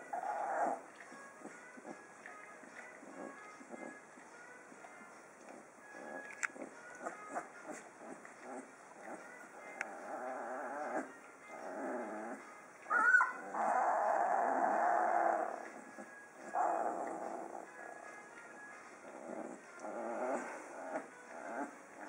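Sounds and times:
puppies growling and whining: 0.0s - 22.0s
puppy sharp cry: 12.9s - 13.4s.

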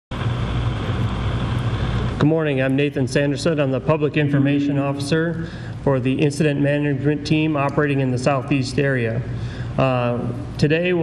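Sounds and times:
loud rumbling noise: 0.1s - 11.0s
low hum: 0.1s - 11.0s.

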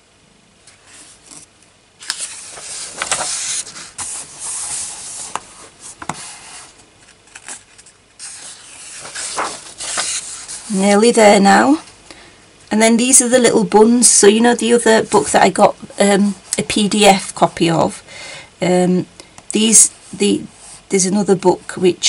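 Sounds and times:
page turning: 0.7s - 10.7s
hand rubbing paper pages: 0.8s - 11.0s
paper crinkles: 1.1s - 10.7s.

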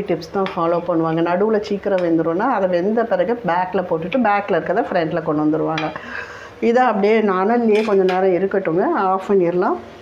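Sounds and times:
woman talking: 0.0s - 9.9s.

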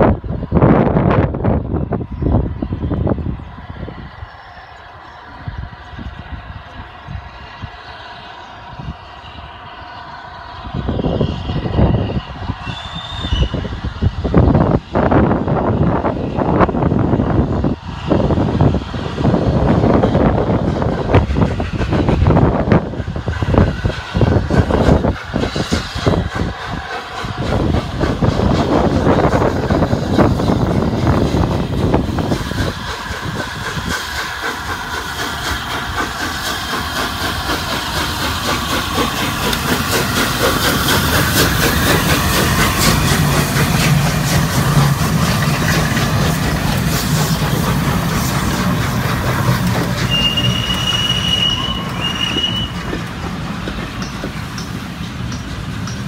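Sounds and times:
steam locomotive exhaust: 0.0s - 56.0s
hissing steam: 0.1s - 56.0s.

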